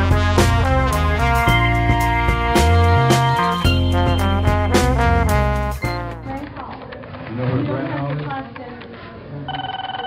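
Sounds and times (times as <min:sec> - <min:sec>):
telephone ringing: 0:09.5 - 0:10.0.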